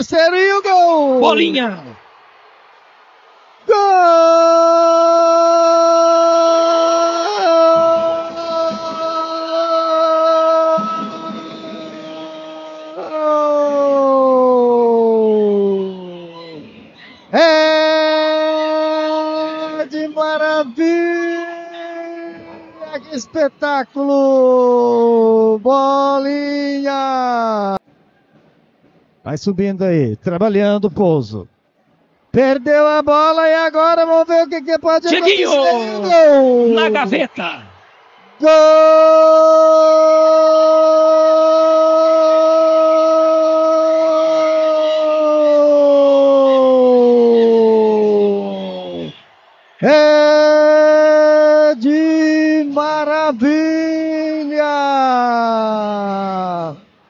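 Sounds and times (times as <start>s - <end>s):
man shouting on high pitch: 3.7s - 15.9s, 17.4s - 27.8s, 35.0s - 37.7s, 38.4s - 49.1s
commentator's drawn-out goal cry: 3.7s - 16.2s, 32.7s - 37.8s, 38.4s - 56.8s.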